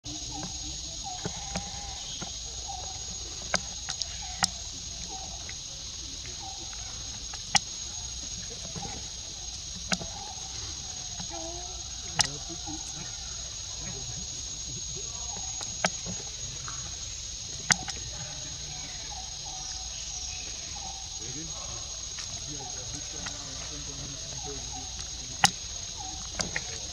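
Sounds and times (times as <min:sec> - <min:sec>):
faint wavering calls: 0:00.0 - 0:26.9
high-pitched insect chorus: 0:00.0 - 0:26.9
sharp clicks: 0:17.6 - 0:18.2, 0:24.3 - 0:26.9.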